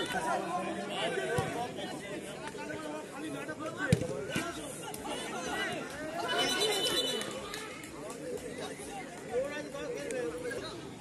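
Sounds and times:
crowd chatter and calls: 0.0s - 11.0s.

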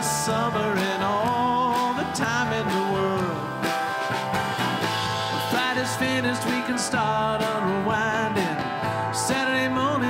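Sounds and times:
man singing: 0.0s - 3.7s, 5.4s - 10.0s
country folk band playing: 0.0s - 10.0s.

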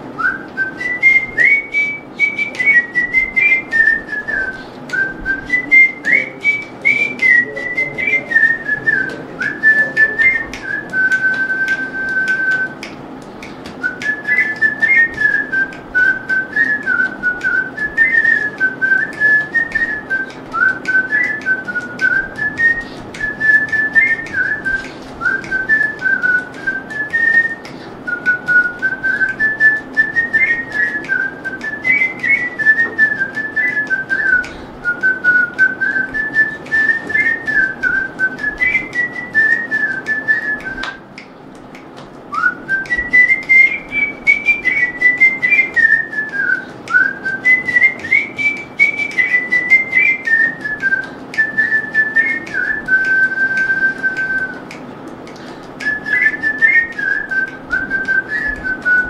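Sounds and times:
man whistling a melody: 0.0s - 41.2s, 42.3s - 59.0s.

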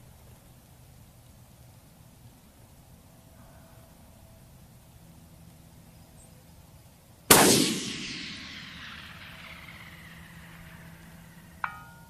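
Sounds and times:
rifle shot echoing: 7.3s - 11.7s.

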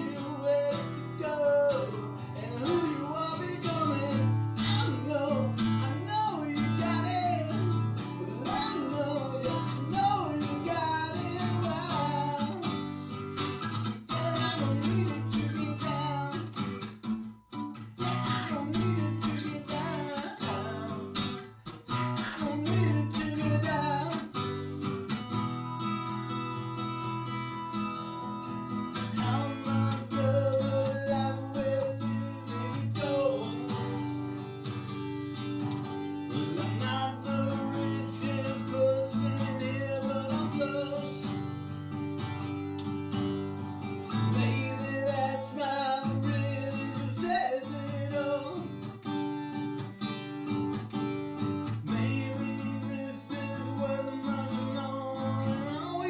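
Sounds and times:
man singing: 0.0s - 16.8s, 17.7s - 25.0s, 28.8s - 34.9s, 35.5s - 41.7s, 43.9s - 49.3s, 51.6s - 56.0s
acoustic guitar strumming: 0.0s - 56.0s.

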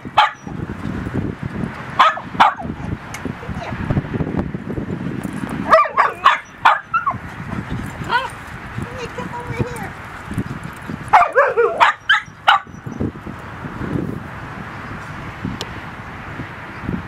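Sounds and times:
small dog barking high-pitched: 0.2s - 0.5s, 2.0s - 2.7s, 5.7s - 7.2s, 11.1s - 12.8s.

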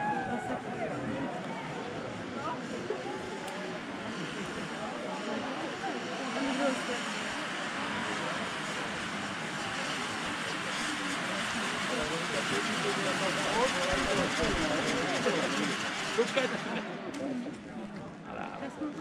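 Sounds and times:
firework fountain hissing: 0.0s - 17.1s
people chattering: 0.0s - 19.0s.

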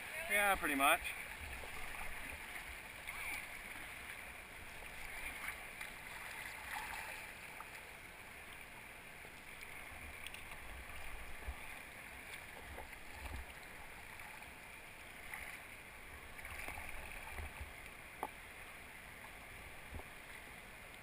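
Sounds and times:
river water over rapids: 0.0s - 21.0s.

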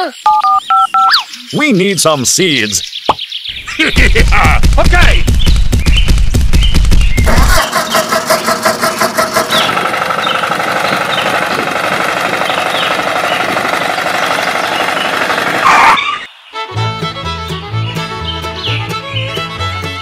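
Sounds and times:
tractor engine starting: 7.2s - 16.3s.

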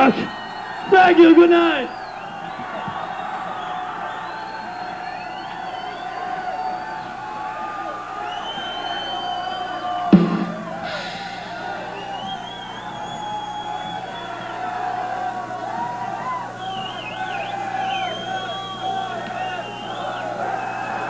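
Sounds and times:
concert crowd noise: 0.0s - 21.0s
high gliding whistles: 8.2s - 15.1s, 16.2s - 21.0s.

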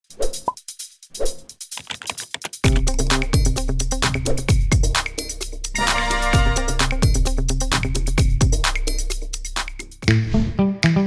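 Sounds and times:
keyboard typing clicks: 1.7s - 3.2s.

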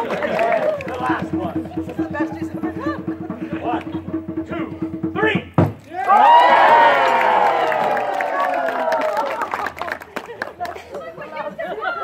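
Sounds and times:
crowd murmuring: 0.0s - 4.5s, 8.3s - 12.0s
drum roll: 0.0s - 8.2s.

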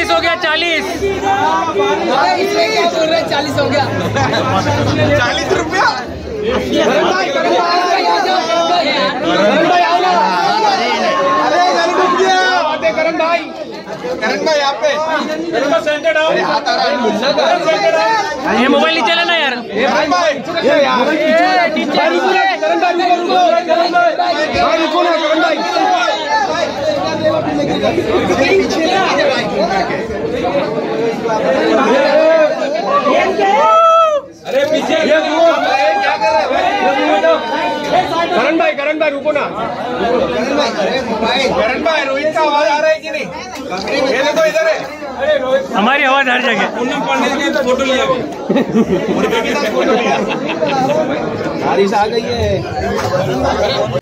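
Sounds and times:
man talking: 0.0s - 32.8s
crowd chatter in a large room: 0.0s - 54.0s.

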